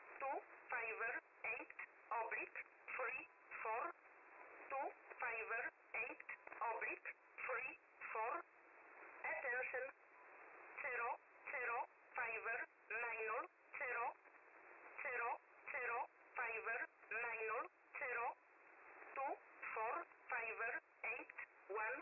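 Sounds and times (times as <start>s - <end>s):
recorded voice reading digits: 0.2s - 4.0s, 4.7s - 8.5s, 9.2s - 10.0s, 10.8s - 14.2s, 14.9s - 18.4s, 19.1s - 22.0s.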